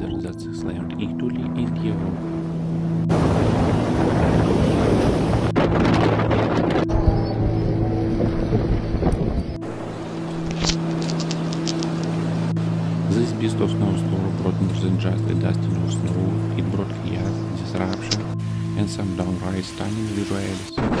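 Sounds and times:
steady low drone: 0.0 - 20.7
blizzard wind blasting microphone: 3.1 - 12.9
brief crackles: 10.5 - 12.2.

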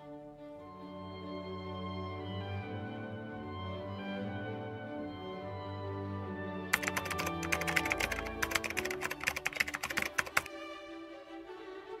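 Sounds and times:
background music with held notes: 0.0 - 12.0
keyboard typing clicks: 6.8 - 10.5.

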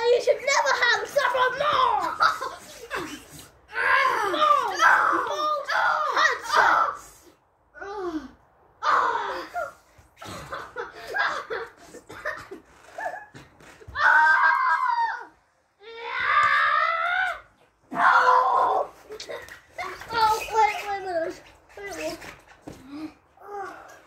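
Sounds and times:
children screaming and yelling: 0.0 - 11.8, 12.9 - 24.0.

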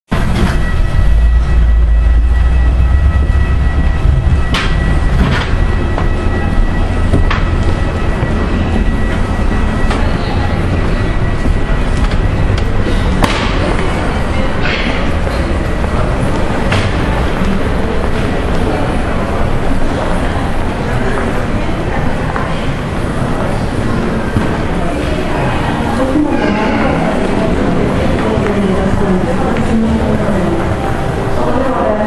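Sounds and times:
rumble and clatter of walking: 0.1 - 26.2, 27.1 - 31.5
faint high whine: 0.1 - 32.0.

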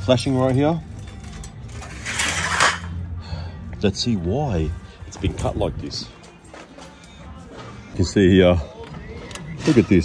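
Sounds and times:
sheet metal scraping rattle: 0.1 - 3.0.

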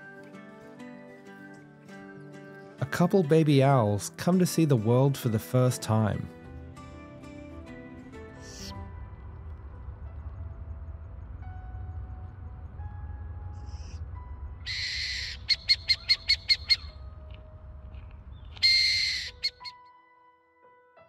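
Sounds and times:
owl chicks rasping hiss: 8.4 - 8.8
owl chicks short sharp calls: 14.7 - 17.0, 18.5 - 19.7.

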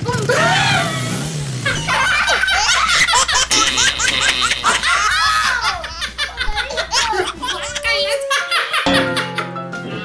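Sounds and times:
people laughing: 0.1 - 9.6.

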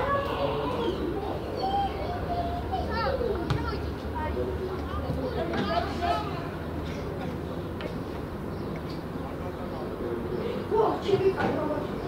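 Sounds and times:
young voices shouting: 0.0 - 4.3.

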